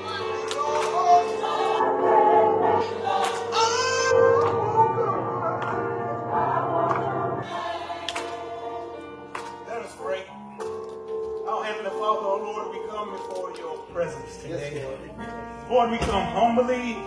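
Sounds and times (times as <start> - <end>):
choir and congregation singing hymn: 0.0 - 9.8.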